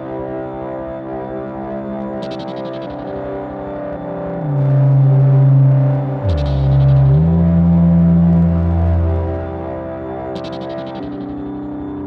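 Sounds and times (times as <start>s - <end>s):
high ticks: 2.2s - 3.2s, 5.7s - 7.8s, 10.4s - 11.4s
synthesizer bass drone: 4.2s - 11.4s
soft held synth tones: 4.3s - 11.6s.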